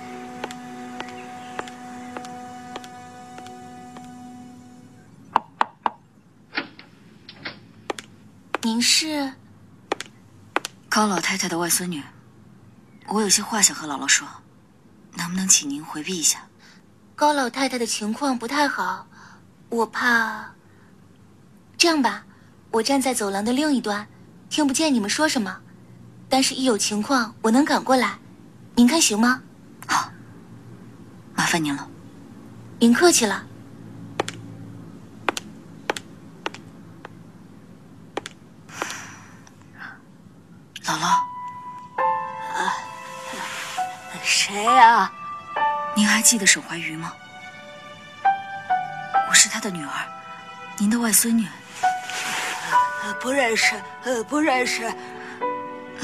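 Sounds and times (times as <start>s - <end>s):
footsteps of hard-soled shoes: 0.4s - 4.2s, 9.9s - 11.3s, 35.3s - 37.2s
woman speaking: 8.6s - 9.4s, 10.9s - 12.2s, 13.1s - 14.4s, 15.2s - 16.6s, 17.2s - 19.1s, 19.7s - 20.6s, 21.8s - 25.6s, 26.3s - 28.2s, 28.8s - 30.2s, 32.8s - 33.5s, 40.8s - 41.4s, 42.4s - 43.0s, 44.1s - 45.2s, 45.9s - 47.2s, 49.2s - 51.8s, 52.6s - 55.4s.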